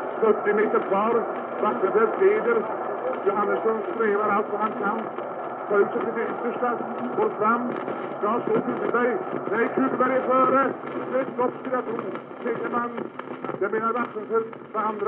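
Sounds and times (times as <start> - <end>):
man commentating fast: 0.2 - 15.0.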